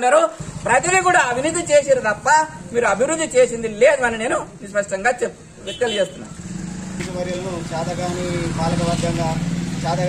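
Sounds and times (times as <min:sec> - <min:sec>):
vehicle engine running: 0:00.4 - 0:03.7.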